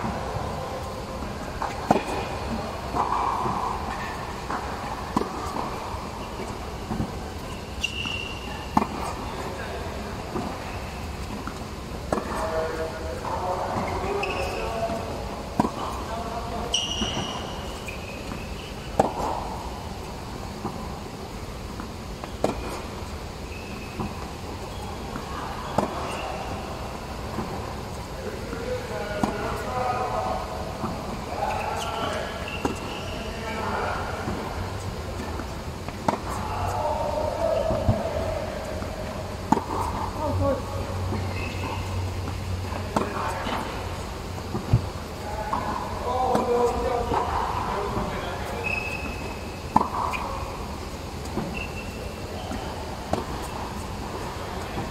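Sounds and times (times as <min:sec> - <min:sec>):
tennis balls struck by rackets: 0:01.2 - 0:09.5, 0:13.2 - 0:21.0, 0:21.7 - 0:28.0, 0:29.1 - 0:33.1, 0:34.1 - 0:54.9
balls bouncing on hard court: 0:01.2 - 0:09.6, 0:10.3 - 0:19.6, 0:21.7 - 0:26.6, 0:30.8 - 0:43.8, 0:44.4 - 0:54.9
short high squeaks: 0:07.5 - 0:08.8, 0:14.0 - 0:14.7, 0:16.7 - 0:18.9, 0:23.5 - 0:24.1, 0:31.5 - 0:33.3, 0:41.2 - 0:42.0, 0:48.6 - 0:50.4, 0:51.5 - 0:52.6.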